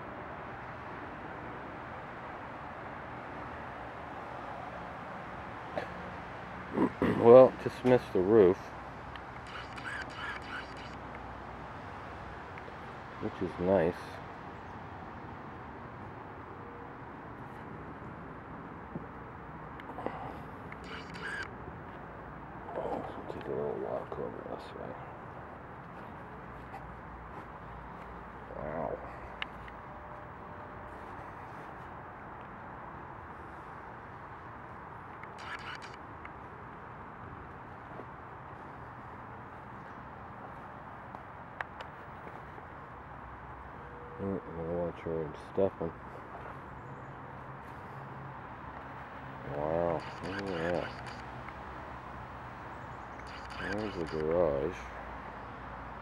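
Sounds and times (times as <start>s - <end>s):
outdoor background hiss: 0.0s - 56.0s.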